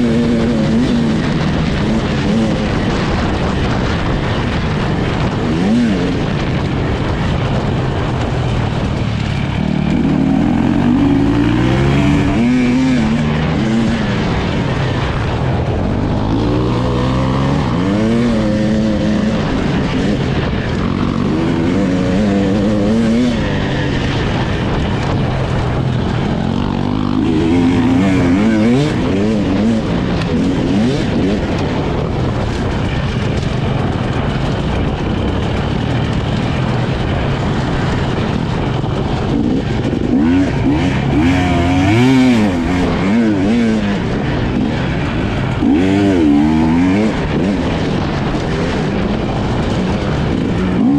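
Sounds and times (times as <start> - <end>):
motorcycle engine revving: 0.0 - 50.9.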